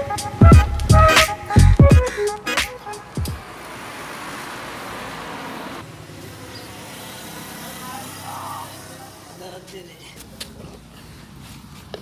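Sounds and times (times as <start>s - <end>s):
background music with a beat: 0.0s - 3.5s
road vehicle noise: 0.0s - 12.0s.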